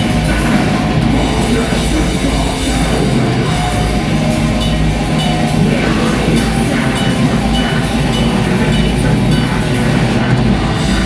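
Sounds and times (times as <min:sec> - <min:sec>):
bass guitar: 0:00.0 - 0:11.0
distorted low-tuned guitars: 0:00.0 - 0:11.0
fast drumming: 0:00.0 - 0:11.0
rapid cymbal strokes: 0:00.0 - 0:11.0.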